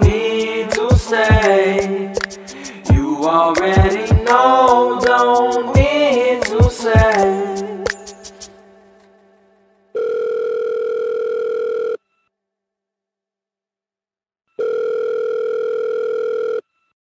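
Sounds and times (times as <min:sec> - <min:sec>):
telephone ringback tone: 0:10.0 - 0:12.0, 0:14.6 - 0:16.6.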